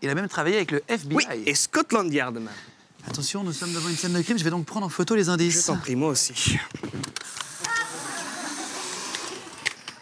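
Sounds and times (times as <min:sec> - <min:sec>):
camera motor whirring: 0:07.1 - 0:10.0.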